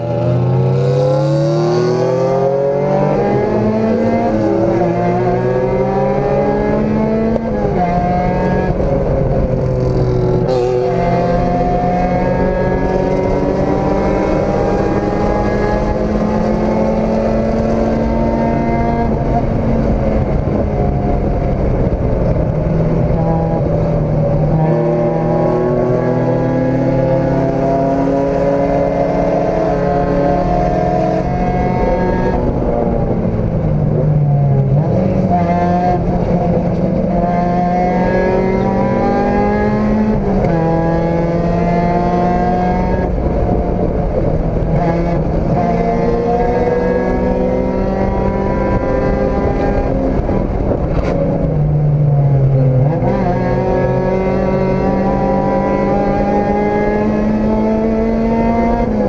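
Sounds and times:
race car engine revving: 0.0s - 59.0s.

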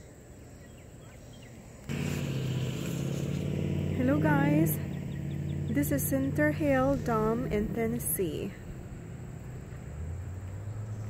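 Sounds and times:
faint outdoor background: 0.0s - 11.0s
motor engine running: 1.9s - 11.0s.

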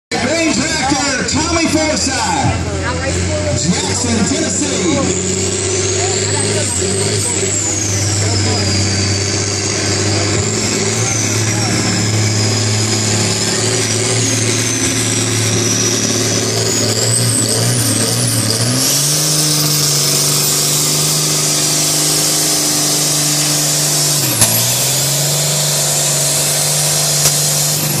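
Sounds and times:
tractor diesel engine under load: 0.0s - 28.0s.

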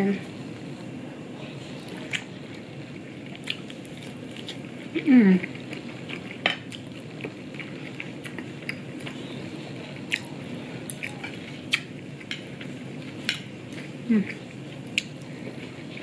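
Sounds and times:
soft chewing: 1.4s - 16.0s.

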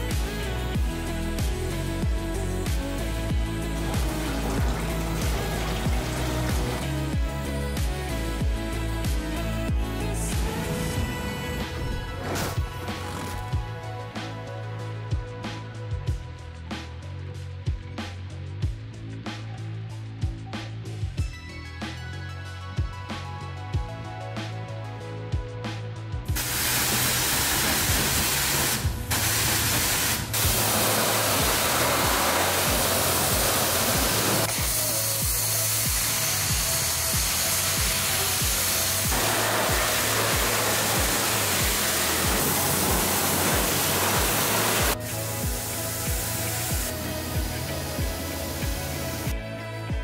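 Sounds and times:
background music with steady beat: 0.0s - 50.0s
pressure washer spraying water: 2.7s - 8.3s, 26.4s - 49.3s.

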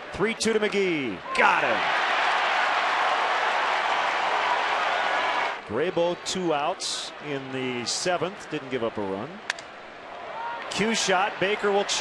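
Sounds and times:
stadium crowd cheering and applauding: 0.0s - 9.1s, 10.0s - 12.0s.

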